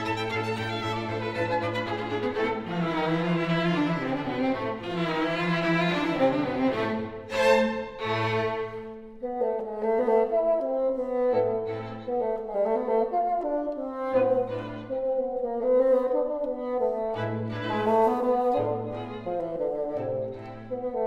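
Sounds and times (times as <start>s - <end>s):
bassoon and strings chamber music: 0.0s - 21.0s.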